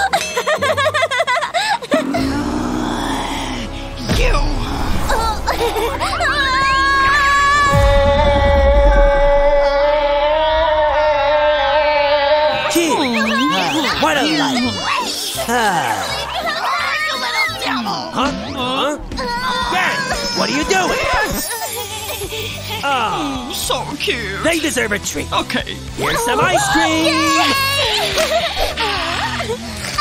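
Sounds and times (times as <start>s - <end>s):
woman laughing: 0.0s - 2.2s, 5.4s - 6.4s, 21.3s - 22.8s, 27.7s - 29.6s
background music: 0.0s - 30.0s
children shouting: 10.4s - 18.2s, 18.8s - 21.6s, 26.0s - 30.0s.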